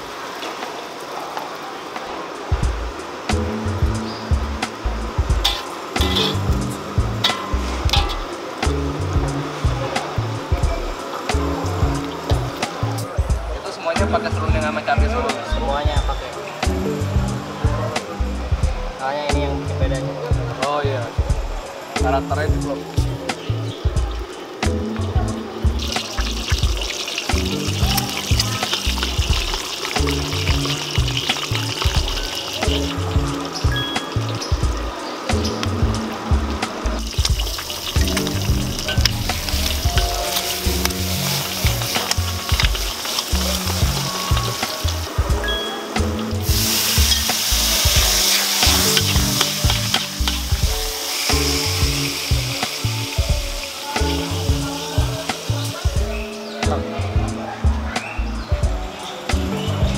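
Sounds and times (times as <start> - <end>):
background music with steady beat: 2.0 - 59.9
eggs sizzling in hot oil: 2.9 - 13.0, 25.6 - 45.2, 45.9 - 56.0.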